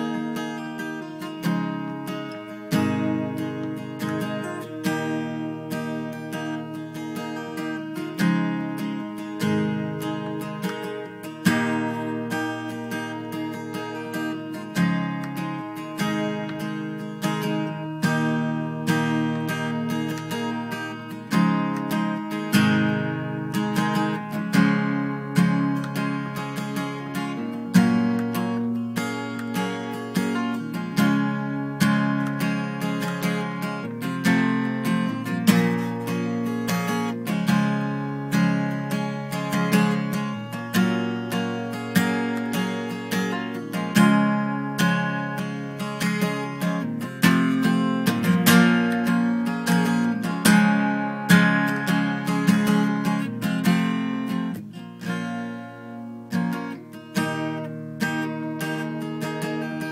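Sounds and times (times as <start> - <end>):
acoustic guitar riff: 0.0 - 59.9.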